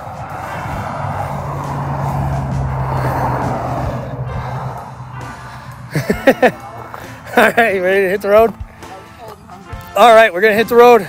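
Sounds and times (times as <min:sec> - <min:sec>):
car tyre noise passing: 0:00.0 - 0:08.6
low engine hum: 0:00.0 - 0:09.8.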